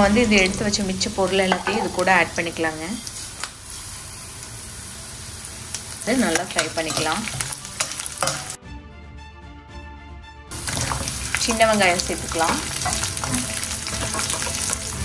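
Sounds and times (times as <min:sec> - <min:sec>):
oil sizzling in a frying pan: 0:00.0 - 0:08.6, 0:10.5 - 0:15.0.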